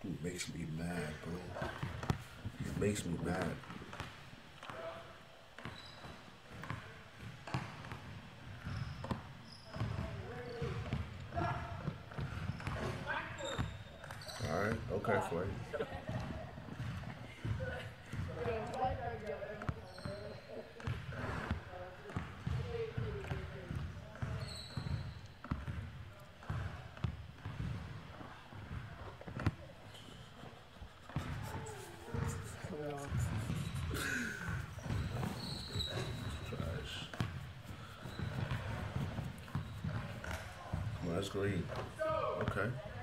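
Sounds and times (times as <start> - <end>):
men talking: 0.0 - 1.8, 2.5 - 3.6, 14.4 - 15.8, 35.8 - 37.2, 41.0 - 42.8
basketball bouncing on court: 1.6 - 4.8, 5.6 - 14.9, 16.0 - 29.7, 31.2 - 32.4, 33.1 - 43.0.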